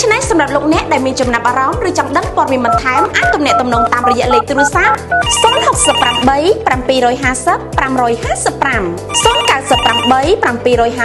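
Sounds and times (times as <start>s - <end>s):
music with steady beat: 2.5s - 6.4s
telephone ringtone: 2.7s - 6.5s, 9.1s - 10.4s.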